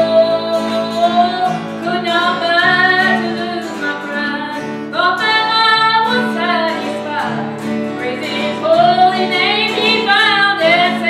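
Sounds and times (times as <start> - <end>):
strummed acoustic guitar: 0.0 - 11.0
woman singing: 0.0 - 11.0.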